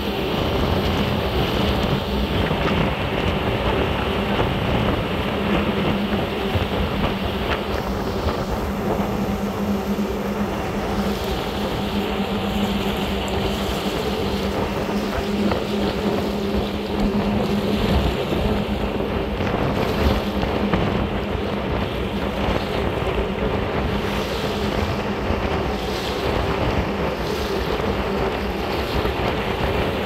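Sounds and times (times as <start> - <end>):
boat engine droning: 0.0 - 30.0
water rushing along hull: 0.0 - 30.0
wind buffeting microphone: 0.0 - 30.0.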